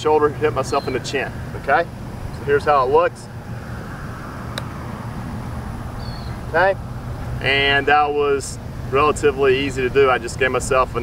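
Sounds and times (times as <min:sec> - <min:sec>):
golf club striking ball: 0:04.5 - 0:04.8.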